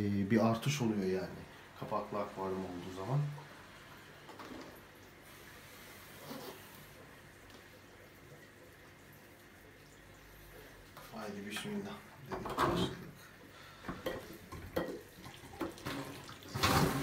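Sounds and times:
aquarium water running: 0.0 - 17.0.

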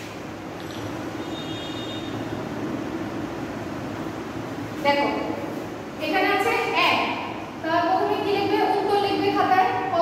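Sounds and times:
woman's voice: 4.8 - 10.0.

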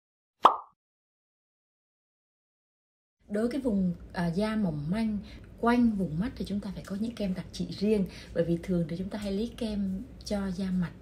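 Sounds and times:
pop sound effect: 0.4 - 0.8.

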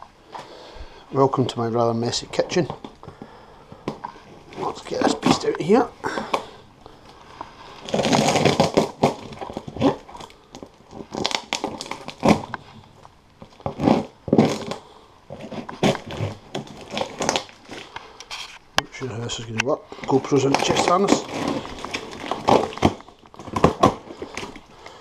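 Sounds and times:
plastic wrap and tape tearing: 4.4 - 6.5, 7.7 - 25.0.

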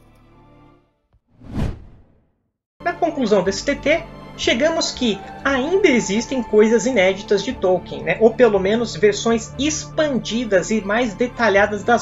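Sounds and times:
whoosh transition effect: 1.4 - 2.2.

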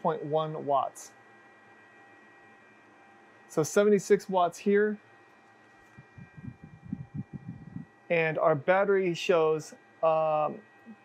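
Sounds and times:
faint high electrical whine: 0.0 - 11.0.

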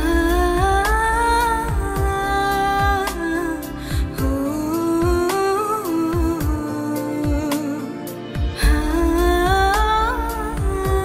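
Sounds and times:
drum beats: 0.0 - 5.4, 8.4 - 11.0
backing music with deep bass: 0.0 - 11.0
wordless humming vocal: 0.0 - 11.0.

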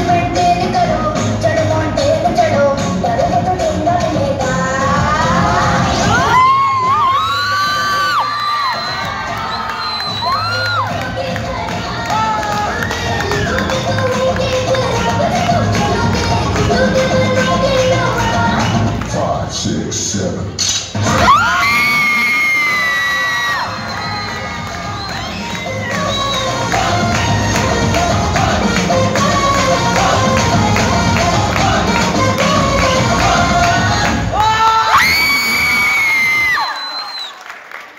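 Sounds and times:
dance music: 0.0 - 36.6
children shouting and cheering: 6.0 - 14.2, 21.1 - 26.7.

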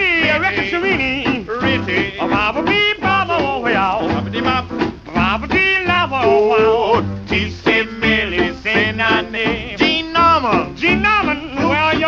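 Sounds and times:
man singing: 0.0 - 12.0
swing jazz band: 0.0 - 12.0.

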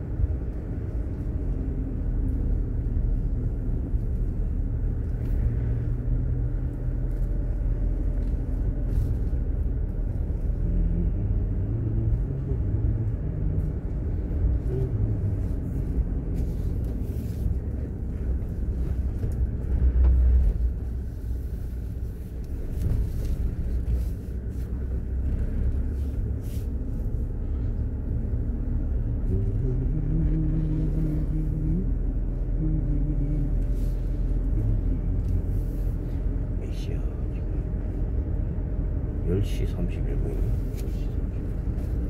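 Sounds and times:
low humming tone: 0.0 - 39.6
car engine and tyres rumbling: 0.0 - 42.0.

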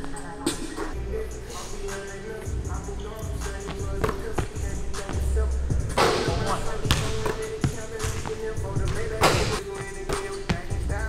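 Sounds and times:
music with vocals: 0.0 - 11.0
basketball bouncing on hardwood floor: 6.0 - 11.0.

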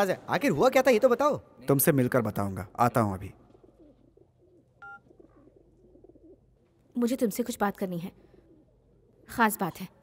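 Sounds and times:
pigeons cooing: 3.5 - 6.8, 8.3 - 9.3
mobile phone beep: 4.8 - 5.0.

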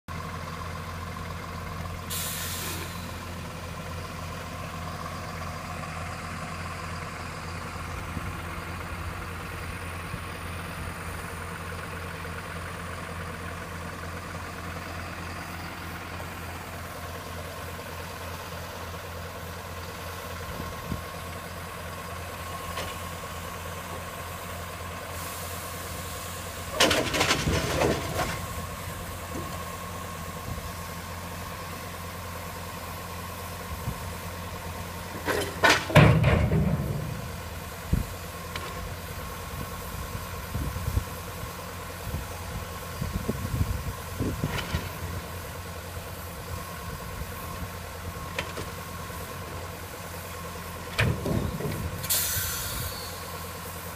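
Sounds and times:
diesel engine idling: 0.1 - 53.9
loud clattering knocks: 35.3 - 37.4.

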